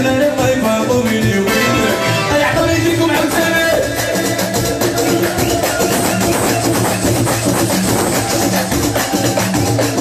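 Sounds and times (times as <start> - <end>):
hand-drum percussion: 0.0 - 10.0
repeating bass line: 1.4 - 3.9.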